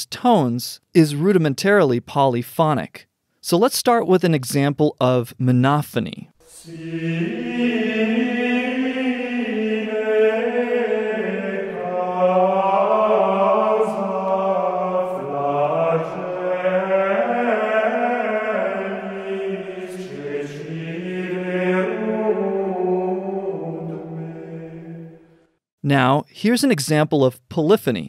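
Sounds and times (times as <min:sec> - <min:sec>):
unaccompanied chant: 0:06.4 - 0:25.4.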